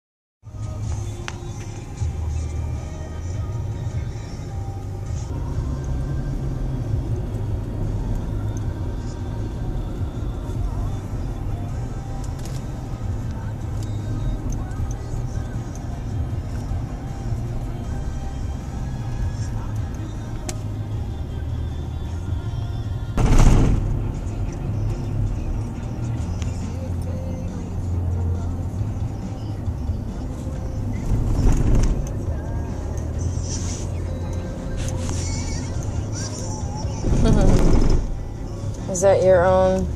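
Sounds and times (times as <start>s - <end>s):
road rumble inside car: 0.5s - 39.9s.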